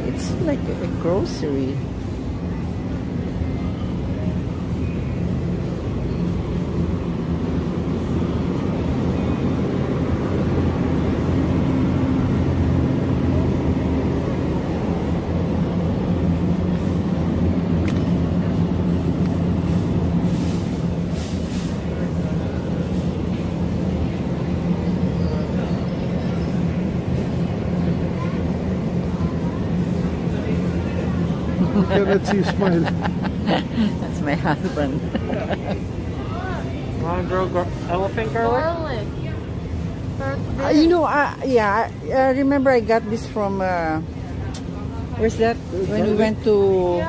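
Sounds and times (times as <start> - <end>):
store interior hum: 0.0 - 47.0.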